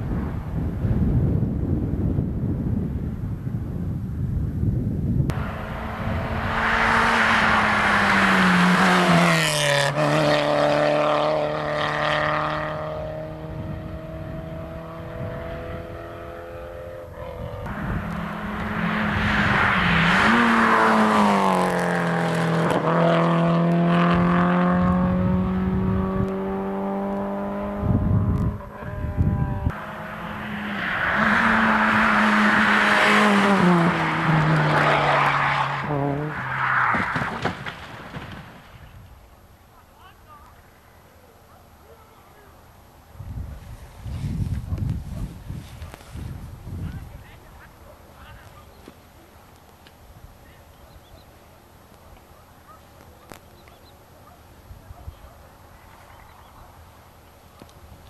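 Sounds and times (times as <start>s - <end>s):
rally cars passing at high revs: 5.3s - 39.0s.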